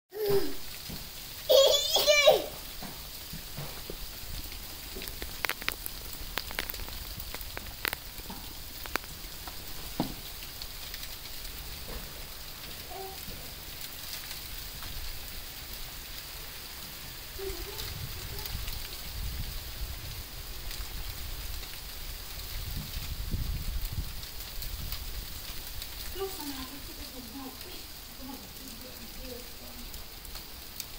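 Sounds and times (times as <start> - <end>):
sleet pattering on leaves: 0.5 - 30.9.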